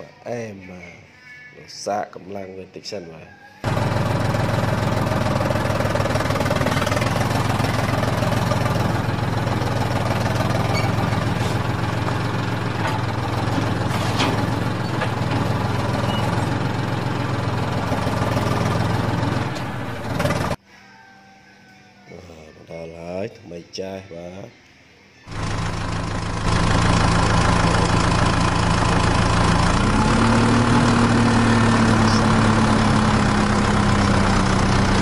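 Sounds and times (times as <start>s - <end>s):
tractor diesel engine running: 3.6s - 20.6s, 25.3s - 35.0s.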